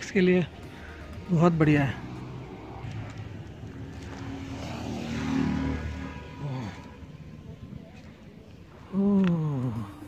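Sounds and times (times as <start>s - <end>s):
passing vehicle engine hum: 0.0s - 10.0s.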